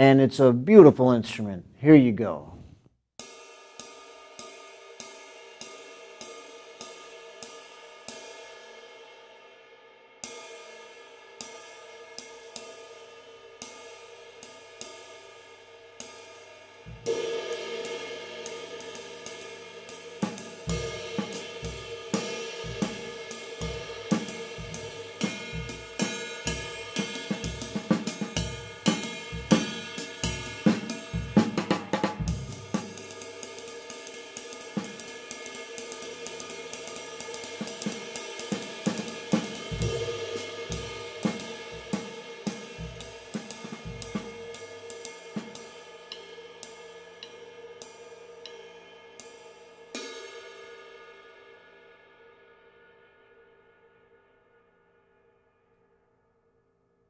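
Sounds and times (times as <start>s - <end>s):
bass drum: 16.9s - 17.2s, 20.2s - 33.0s, 38.9s - 44.6s
ride cymbal ringing: 18.2s - 31.4s
snare drum accents: 22.2s - 23.2s, 37.7s - 44.5s.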